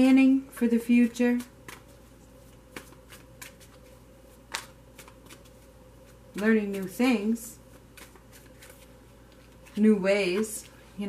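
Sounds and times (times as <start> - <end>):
cards shuffled in hand: 1.3 - 7.0, 7.7 - 10.6.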